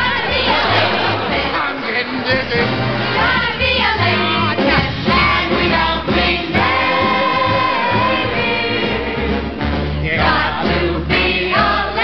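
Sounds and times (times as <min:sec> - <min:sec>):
band accompaniment: 0:00.0 - 0:12.0
women singing in chorus: 0:03.2 - 0:09.3.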